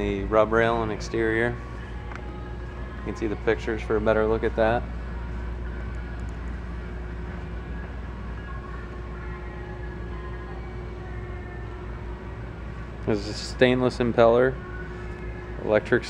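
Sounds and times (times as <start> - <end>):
ventilation drone: 0.0 - 16.0.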